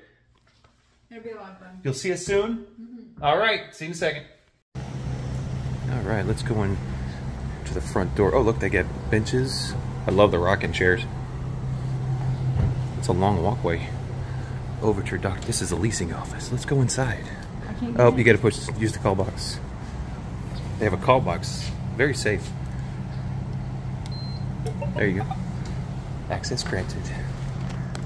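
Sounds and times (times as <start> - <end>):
steady low hum: 4.8 - 28.0.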